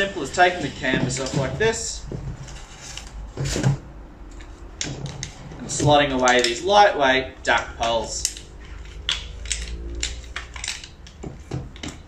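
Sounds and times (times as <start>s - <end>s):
aluminium poles clicking together: 6.1s - 6.8s, 7.5s - 12.0s.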